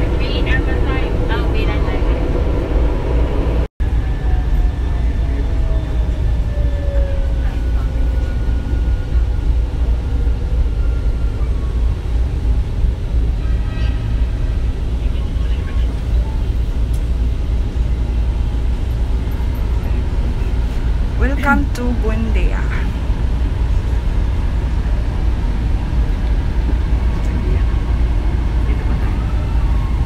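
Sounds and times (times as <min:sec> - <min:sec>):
train low rumble: 0:00.0 - 0:30.0.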